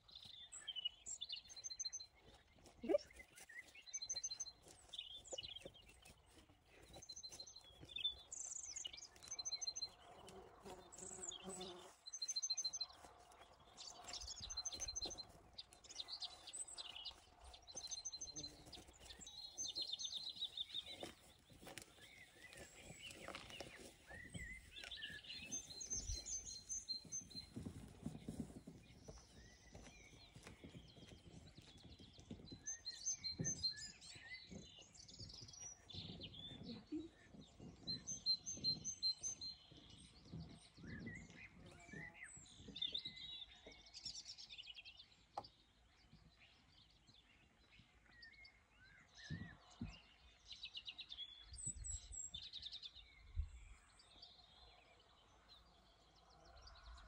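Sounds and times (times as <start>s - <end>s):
songbirds chirping: 0.0s - 57.0s.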